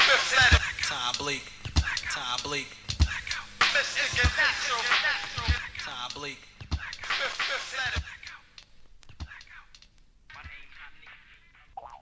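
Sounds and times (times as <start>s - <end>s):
soft vocal phrases: 9.2s - 11.8s.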